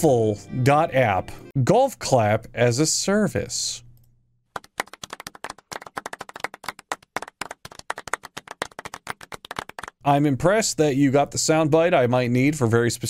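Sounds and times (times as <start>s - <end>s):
people clapping politely: 4.6s - 10.0s.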